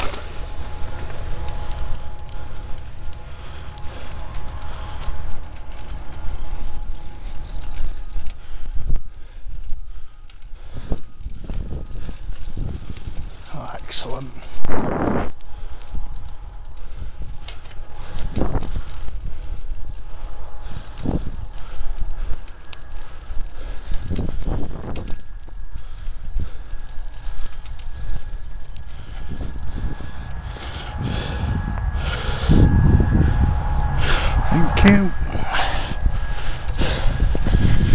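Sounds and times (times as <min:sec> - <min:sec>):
bicycle tyres rumbling on gravel: 0:00.0 - 0:37.9
bike jolts and rattles: 0:00.0 - 0:37.9.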